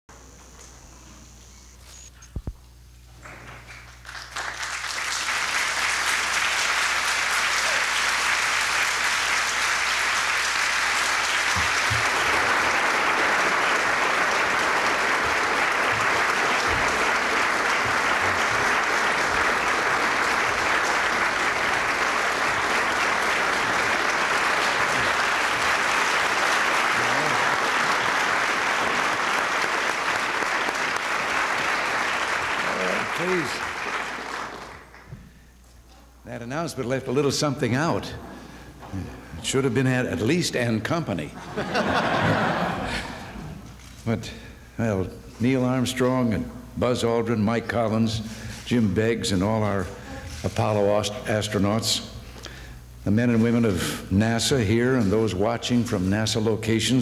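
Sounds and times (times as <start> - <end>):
audience applauding: 3.4 - 35.2.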